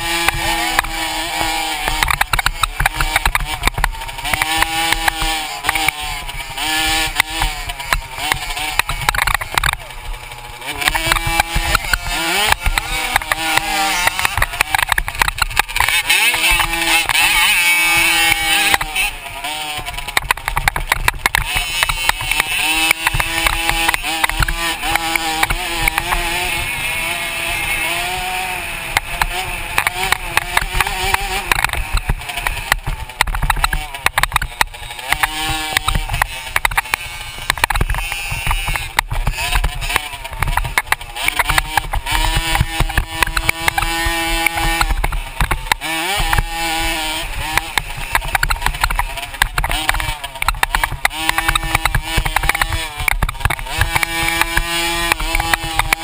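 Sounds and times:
dirt bike engine revving: 0.0 - 56.0
sharp knocks from rough track: 0.0 - 56.0.

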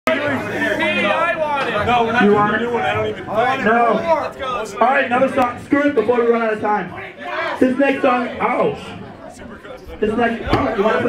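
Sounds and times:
people talking: 0.1 - 11.0.

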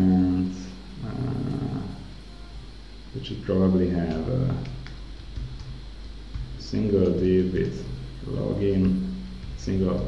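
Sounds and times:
steady low hum: 0.0 - 10.0
man humming in hesitation: 1.0 - 2.5.

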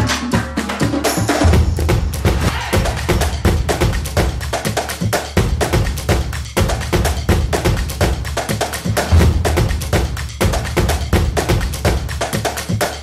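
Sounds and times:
bass drum: 0.0 - 13.0
snare drums: 0.0 - 13.0.

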